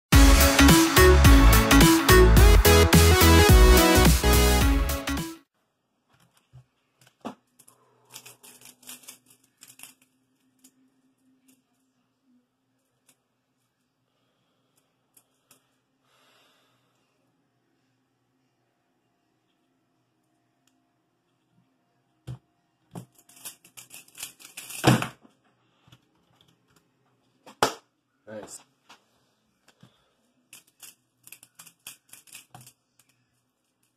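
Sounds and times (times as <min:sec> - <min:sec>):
plastic puzzle clicks and rattles: 0:06.2 - 0:11.8, 0:22.9 - 0:25.3, 0:30.5 - 0:33.9.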